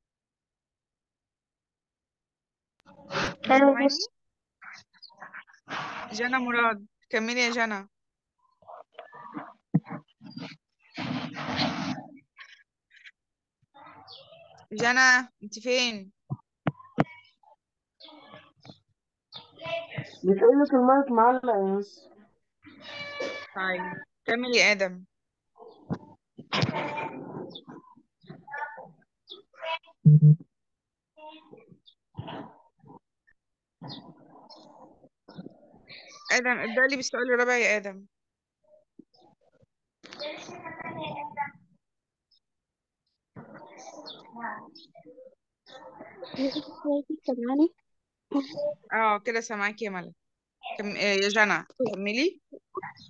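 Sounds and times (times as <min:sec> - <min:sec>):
faint broken-up speech: 0:26.5 - 0:30.0, 0:40.1 - 0:41.7.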